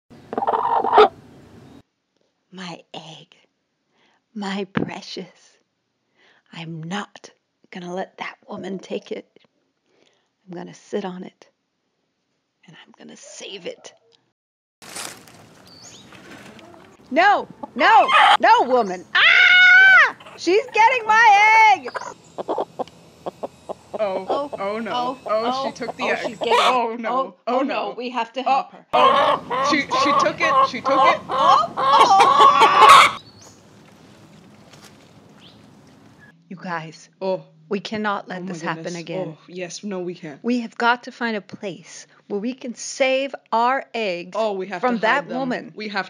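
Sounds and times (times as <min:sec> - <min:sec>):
chickens clucking: 0:00.2 - 0:01.2, 0:15.6 - 0:26.8, 0:29.0 - 0:36.3
hen calling: 0:00.2 - 0:01.2, 0:15.5 - 0:26.8, 0:29.0 - 0:36.3.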